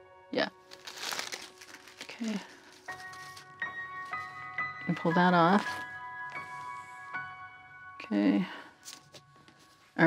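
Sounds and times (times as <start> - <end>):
soft background music: 0.0 - 10.0
paper rustling and crinkling: 0.6 - 6.8, 8.8 - 10.0.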